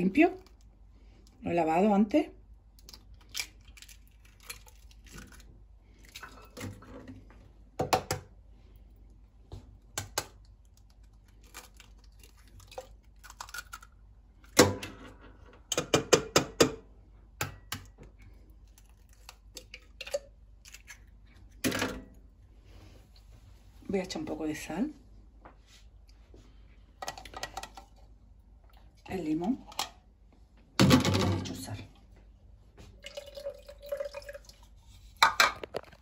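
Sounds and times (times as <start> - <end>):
eggshells cracking: 2.7 - 6.2, 10.0 - 14.0.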